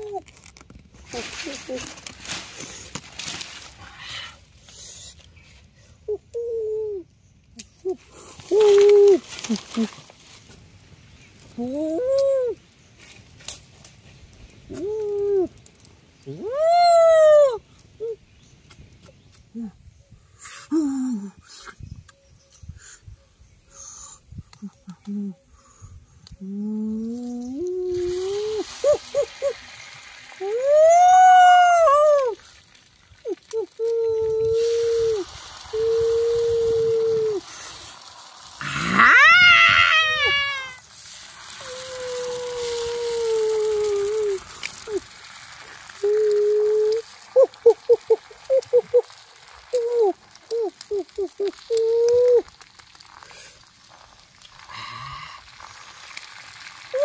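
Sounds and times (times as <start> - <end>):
man exclaiming ooh: 16.3 - 18.2, 30.4 - 32.4, 41.6 - 45.0, 49.8 - 52.4
eggs sizzling on hot plate: 28.0 - 30.9, 32.3 - 57.0.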